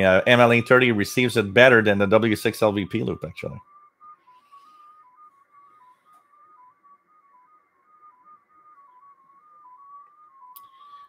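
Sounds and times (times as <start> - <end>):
receiver hiss: 0.0 - 11.0
tone hopping between pitches: 0.0 - 11.0.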